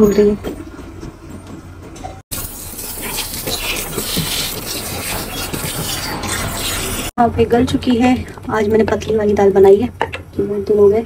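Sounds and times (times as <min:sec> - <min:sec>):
food sizzling on stove: 0:02.3 - 0:06.0.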